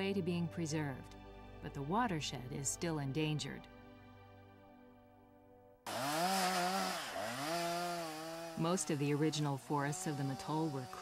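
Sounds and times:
chainsaw at high revs: 0:05.8 - 0:11.0.

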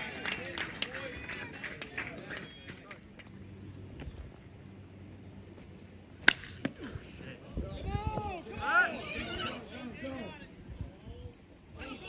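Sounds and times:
voices shouting: 0:07.6 - 0:10.6, 0:11.7 - 0:12.0.

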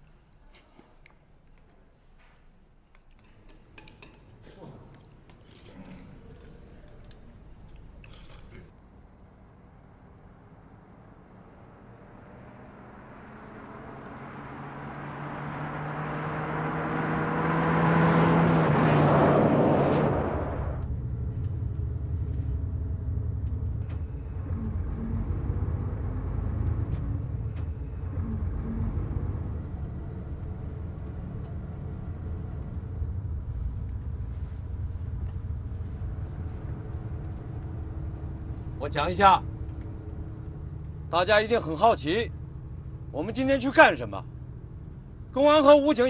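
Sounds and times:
bus passing: 0:08.6 - 0:46.0
bus cabin rumble: 0:20.2 - 0:46.0.

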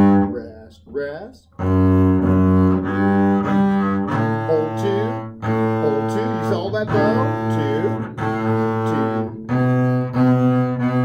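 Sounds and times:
bowed double bass notes: 0:00.0 - 0:11.0.

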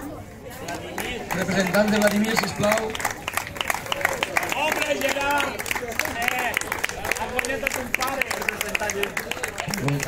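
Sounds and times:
people talking and calling out: 0:00.0 - 0:10.0
audience clapping: 0:00.6 - 0:10.0.

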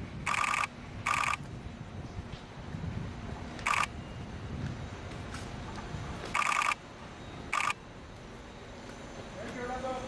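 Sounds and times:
camera shutter clicks: 0:00.3 - 0:01.4, 0:03.6 - 0:03.9, 0:06.3 - 0:06.8, 0:07.5 - 0:07.8.

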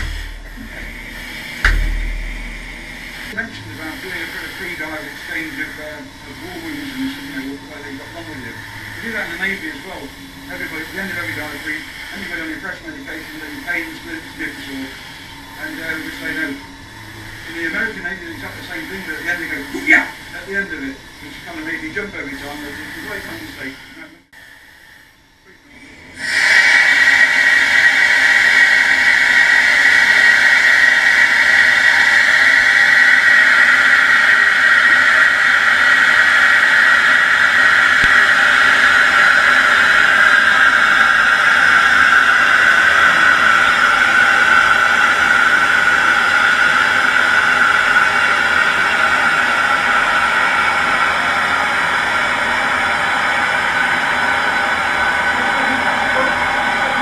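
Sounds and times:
compressed air hissing from chamber: 0:00.0 - 0:25.5, 0:26.2 - 0:57.0.

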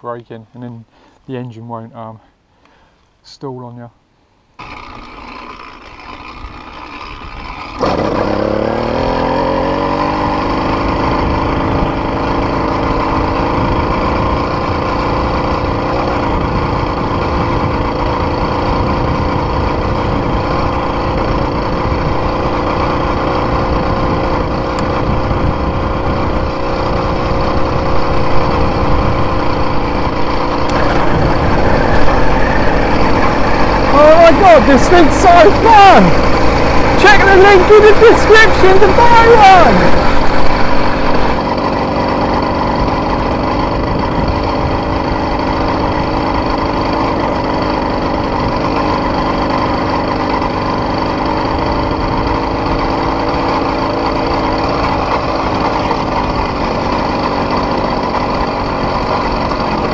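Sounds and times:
motorized bicycle engine: 0:04.6 - 0:59.9.

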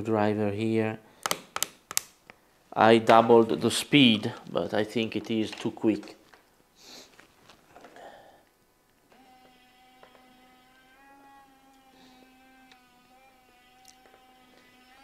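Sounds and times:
soft handling noises: 0:03.0 - 0:09.0
small motor humming with whine: 0:09.1 - 0:15.0.

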